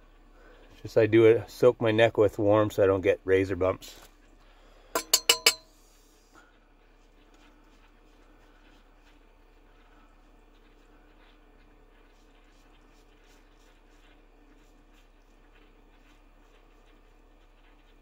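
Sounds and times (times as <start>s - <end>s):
faint steady hum: 0.0s - 18.0s
razor clinking against pot: 5.0s - 5.8s.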